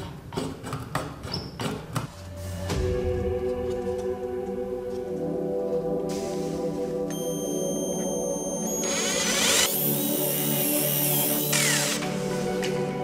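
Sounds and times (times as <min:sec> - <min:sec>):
background music: 0:02.0 - 0:13.0
power drill boring wood: 0:08.6 - 0:12.1.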